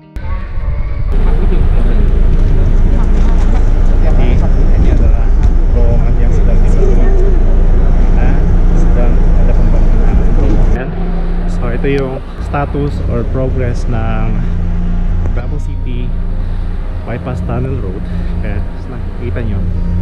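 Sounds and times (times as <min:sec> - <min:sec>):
loud steady low rumble: 0:00.0 - 0:20.0
people chattering: 0:00.0 - 0:20.0.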